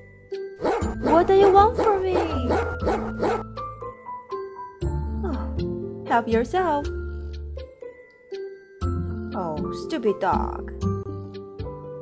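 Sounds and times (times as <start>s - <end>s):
light background music: 0.0s - 12.0s
cartoon dog barking: 0.6s - 3.5s.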